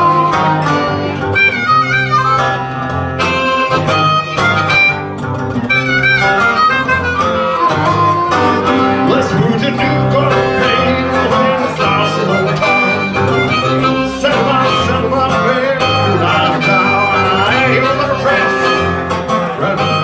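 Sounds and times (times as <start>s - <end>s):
guitar strumming and picking: 0.0s - 20.0s
harmonica notes: 0.0s - 20.0s.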